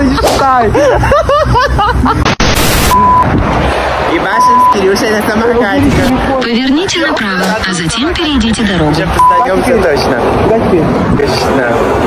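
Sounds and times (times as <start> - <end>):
high-pitched bleep tone: 2.6 - 3.3, 4.4 - 5.0, 6.4 - 9.6.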